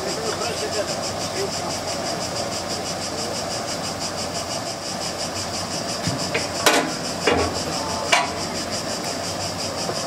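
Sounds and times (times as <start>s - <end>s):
stationary gas engine running: 0.0s - 10.0s
sharp metallic knocks: 6.0s - 8.6s.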